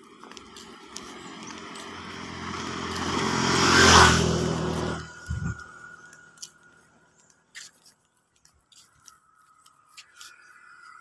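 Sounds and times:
vehicle engine approaching: 0.0s - 7.4s.

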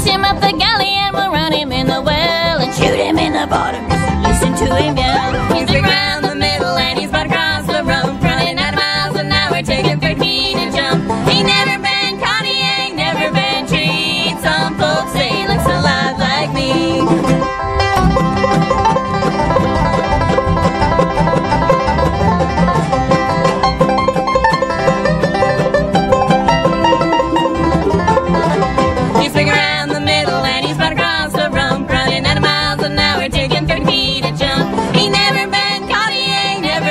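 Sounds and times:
bluegrass band playing: 0.0s - 36.9s.

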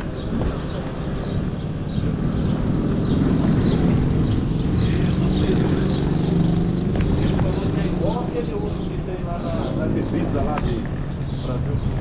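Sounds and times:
vehicle engine running: 0.0s - 12.0s
voices in background: 3.5s - 12.0s.

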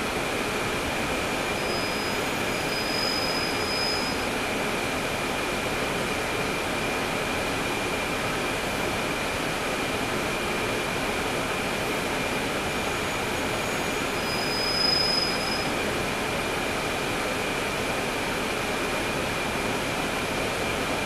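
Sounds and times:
bus engine rumble and hiss: 0.0s - 21.0s
high-pitched squeal: 1.5s - 4.3s, 13.0s - 15.8s.

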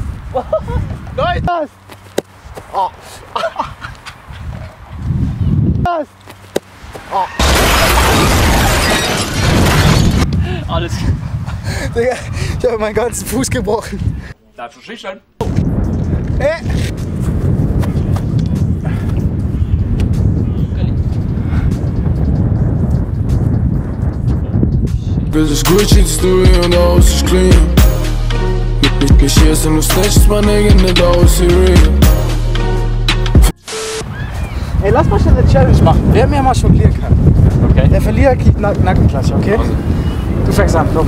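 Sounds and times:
wind buffeting microphone: 0.0s - 1.6s, 3.6s - 5.9s, 10.2s - 14.4s, 15.4s - 25.4s, 34.0s - 41.0s.

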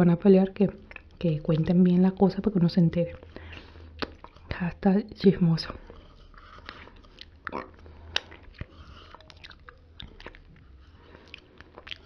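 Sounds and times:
wet lip and tongue clicks: 0.8s - 1.7s, 3.1s - 4.5s, 5.9s - 12.0s.

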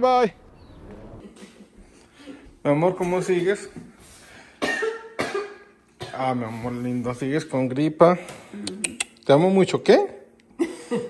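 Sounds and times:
woman coughing: 4.6s - 6.3s.

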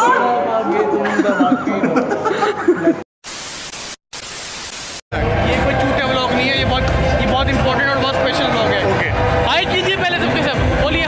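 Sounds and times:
television static hiss: 3.2s - 5.0s.

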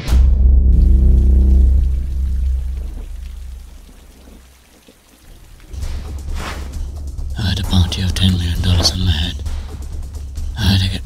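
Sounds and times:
deep low music drone: 0.0s - 4.2s, 5.6s - 11.0s
heavy rain falling: 1.0s - 10.0s.

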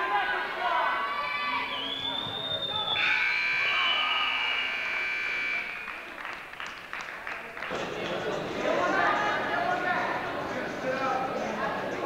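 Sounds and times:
buzzer steady high tone: 2.8s - 6.0s
scattered clapping: 5.5s - 8.4s.

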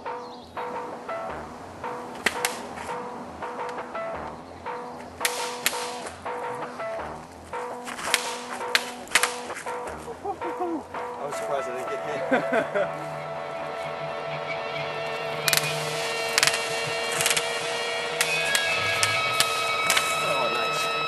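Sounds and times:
background music with steady beat: 0.0s - 21.0s
practice swords clacking: 2.1s - 3.0s, 5.2s - 6.2s, 7.6s - 10.1s.

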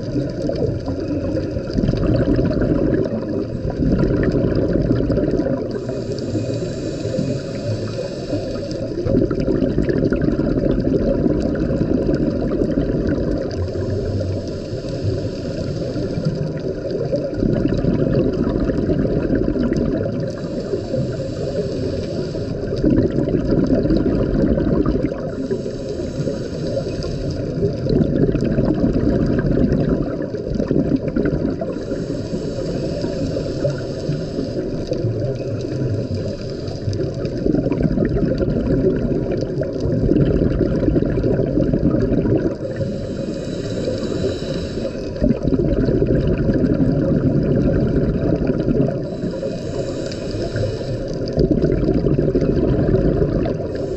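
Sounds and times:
exhaled bubbles underwater: 0.0s - 53.9s
regulator inhale hiss: 3.1s - 9.1s, 13.4s - 17.8s, 19.8s - 23.2s, 25.1s - 27.9s, 31.5s - 37.7s, 42.4s - 45.8s, 48.9s - 51.7s, 53.2s - 53.9s.

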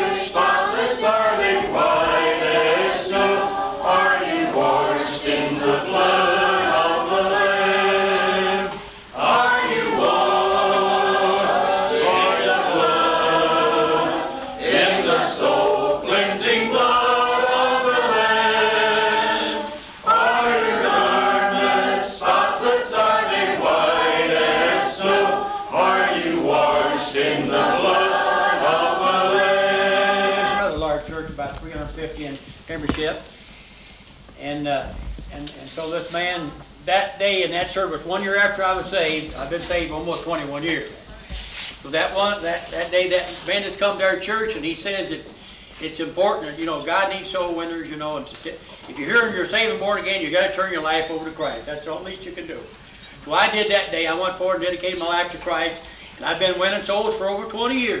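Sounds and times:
group of people singing: 0.0s - 31.4s.

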